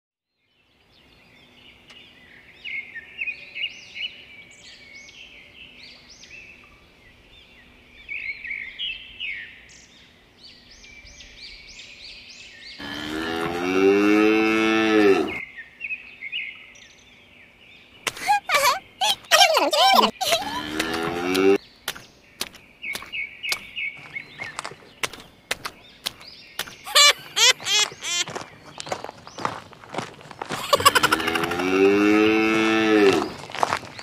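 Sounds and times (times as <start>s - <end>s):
birds chirping: 0.5s - 34.0s
cow mooing: 12.8s - 15.4s, 20.4s - 21.6s, 31.1s - 33.4s.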